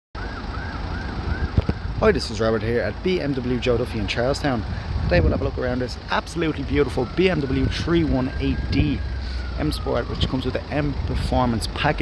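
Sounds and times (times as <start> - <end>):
siren wailing: 0.2 - 12.0
low outdoor rumble: 0.3 - 12.0.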